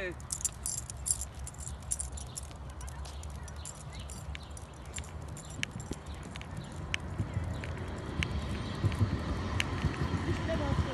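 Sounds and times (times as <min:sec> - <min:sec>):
footsteps on asphalt: 0:00.2 - 0:10.9.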